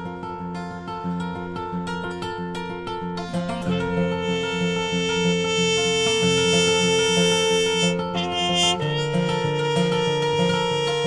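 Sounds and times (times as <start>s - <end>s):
acoustic guitar strumming: 0.0s - 11.0s
trumpet holding long note: 3.7s - 11.0s.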